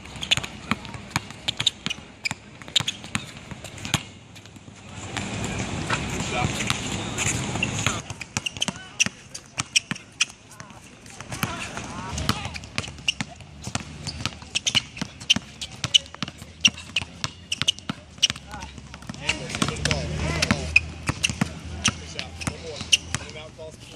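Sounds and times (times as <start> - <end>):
basketball bouncing on hard court: 0.0 - 23.4.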